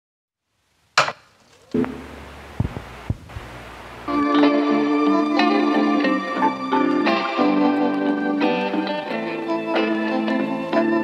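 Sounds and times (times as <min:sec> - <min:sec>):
sharp crack: 0:00.9 - 0:03.5.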